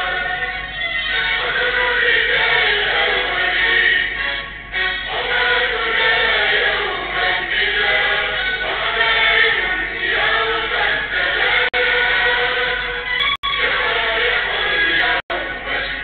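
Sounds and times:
girls singing in unison: 0:01.4 - 0:13.0, 0:13.6 - 0:16.0.

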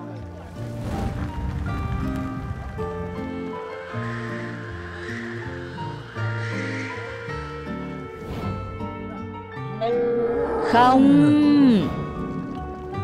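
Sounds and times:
background music with held notes: 0:00.0 - 0:13.0.

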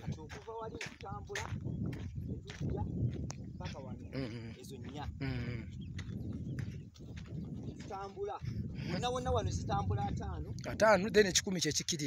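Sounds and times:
man's voice: 0:00.0 - 0:01.6, 0:03.6 - 0:05.7, 0:07.8 - 0:12.0
footsteps on loose dirt: 0:00.0 - 0:12.0
low rumble: 0:08.5 - 0:10.8.

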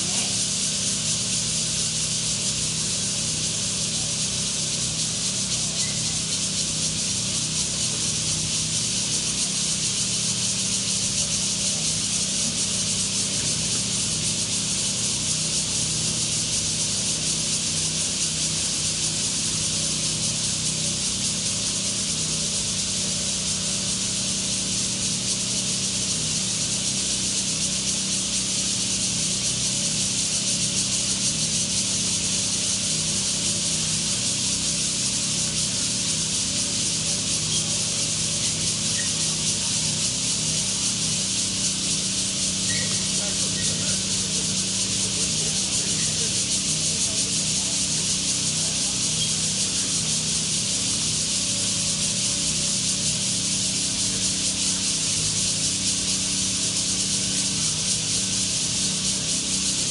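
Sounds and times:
high-pitched hiss: 0:00.0 - 0:59.9.

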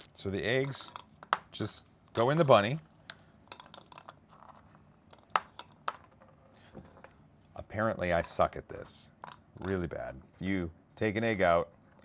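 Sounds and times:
candy eggs clicking against plastic: 0:00.7 - 0:06.3.

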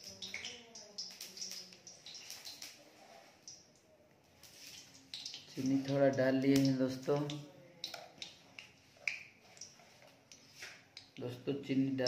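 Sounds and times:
oil sizzling: 0:00.0 - 0:11.2
hot oil popping: 0:00.0 - 0:12.0.

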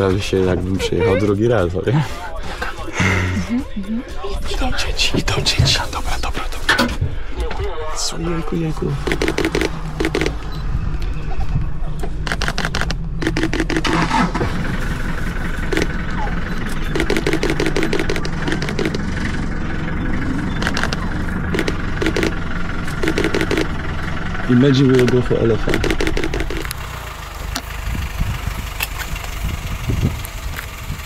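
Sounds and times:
jeep engine idling: 0:00.0 - 0:31.0
rapid clicking: 0:09.0 - 0:10.5, 0:12.0 - 0:14.3, 0:16.6 - 0:19.4, 0:20.6 - 0:24.0, 0:24.8 - 0:26.8.

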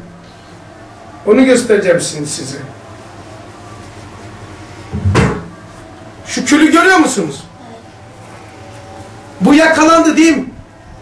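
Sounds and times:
metal tray knocking with dull thud: 0:05.0 - 0:05.5.

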